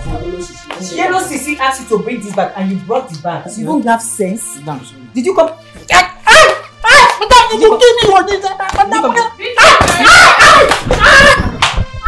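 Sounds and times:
people shouting: 5.9 - 8.0, 8.8 - 11.6
people crying out: 6.3 - 7.5.

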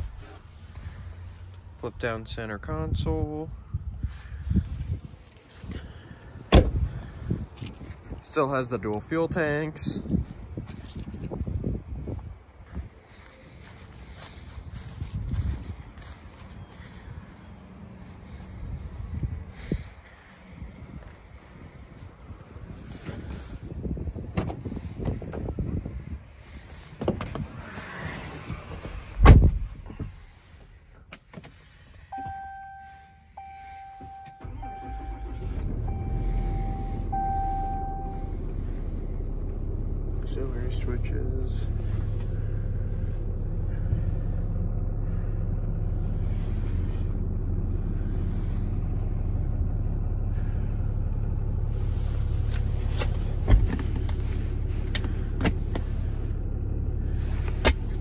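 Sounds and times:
truck engine starting and idling: 0.0 - 58.0
truck door shutting thump: 6.5 - 6.9, 29.2 - 29.7
beeping chime: 32.2 - 35.3.

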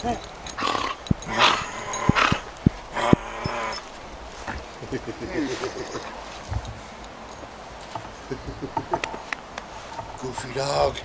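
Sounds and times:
dog huffing and snuffling: 0.0 - 7.0.

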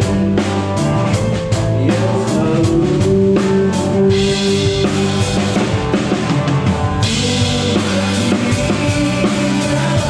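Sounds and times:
drum and cymbal hits: 0.0 - 10.0
live rock band playing: 0.0 - 10.0.

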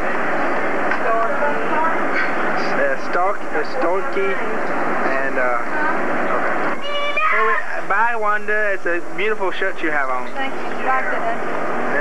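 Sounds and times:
chatter of people: 0.0 - 12.0
high-pitched vocal cry: 6.7 - 7.8.

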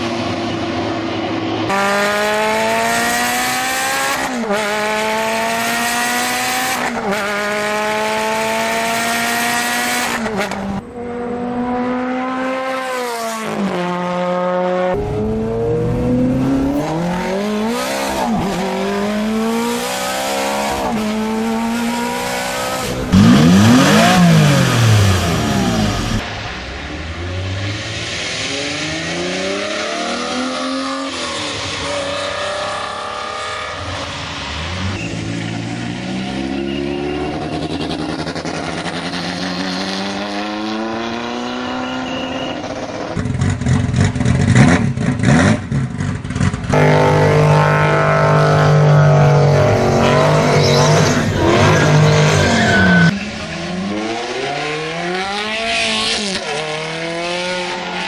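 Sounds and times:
cars accelerating past: 0.0 - 45.8, 46.4 - 58.0
supercar engines revving: 0.0 - 58.0.

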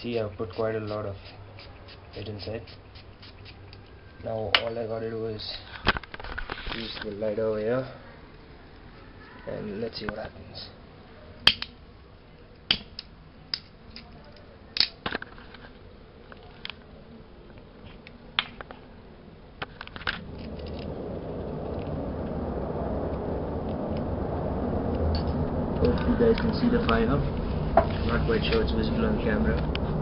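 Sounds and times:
flames rushing: 19.6 - 30.0.

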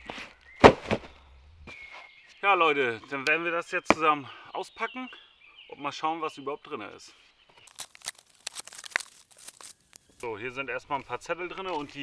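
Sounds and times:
cardboard crackling: 7.6 - 10.2
packing tape tearing: 7.7 - 10.1.

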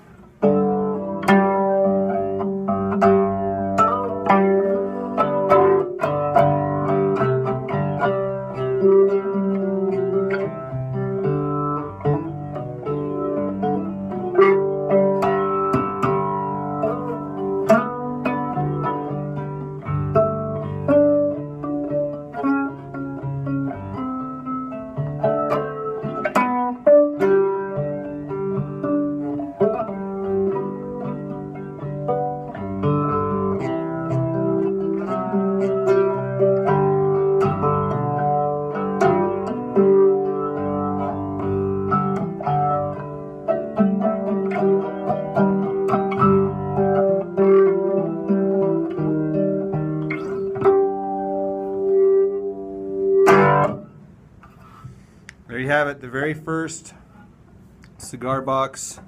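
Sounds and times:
picked guitar melody: 0.0 - 59.0.

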